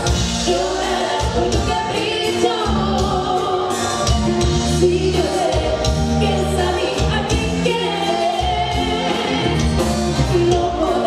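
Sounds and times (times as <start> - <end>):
drums: 0.0 - 11.0
electric bass: 0.0 - 11.0
woman singing lead: 0.0 - 11.0.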